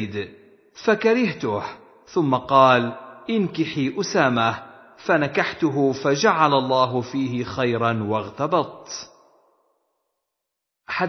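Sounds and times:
recitation: 0.0 - 9.3.

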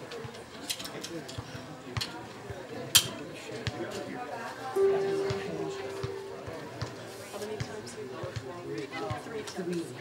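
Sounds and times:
held instrumental note: 4.8 - 7.4.

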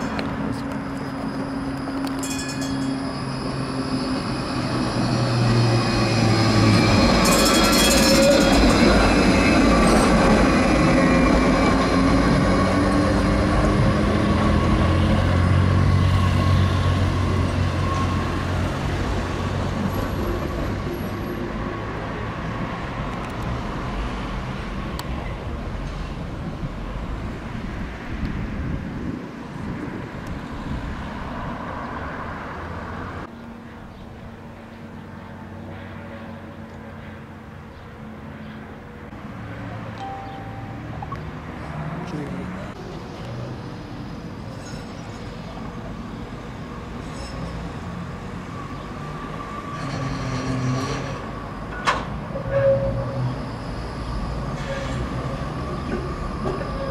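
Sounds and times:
tram drive whine: 0.0 - 56.9
wheels rumbling on rail: 0.0 - 56.9.

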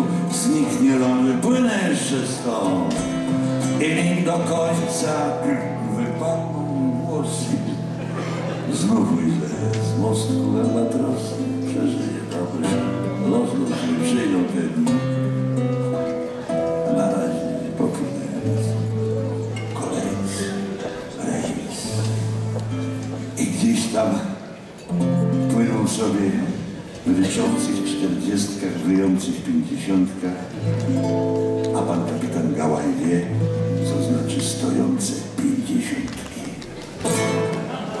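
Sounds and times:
acoustic guitar playing: 0.0 - 38.0.

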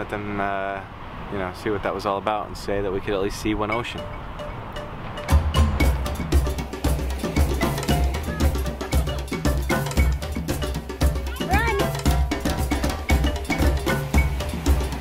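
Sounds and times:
music with percussive beat: 3.7 - 15.0.

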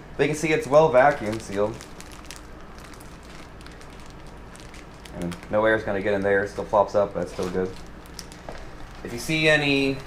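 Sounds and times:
plastic bag crinkling: 0.4 - 10.0.

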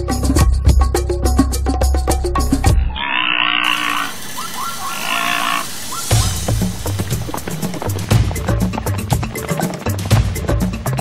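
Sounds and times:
background music: 0.0 - 3.0, 4.0 - 11.0
animal rasping calls and yelps: 2.8 - 6.4.

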